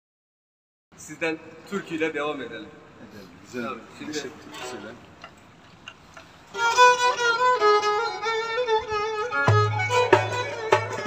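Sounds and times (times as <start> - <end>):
solo violin folk melody: 6.2 - 11.0.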